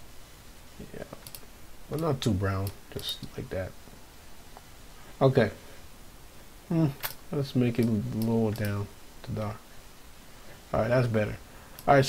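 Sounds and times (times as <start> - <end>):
computer mouse clicks: 1.1 - 2.8, 8.1 - 8.8.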